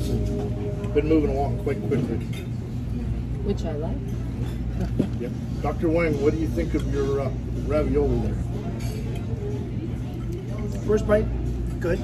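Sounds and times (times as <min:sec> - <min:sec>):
faint murmur of voices: 0:00.0 - 0:12.0.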